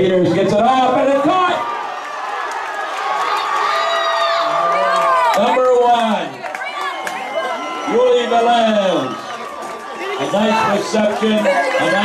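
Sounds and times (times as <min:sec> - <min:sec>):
crowd cheering and yelling: 0:00.0 - 0:12.0
voices shouting: 0:00.8 - 0:12.0.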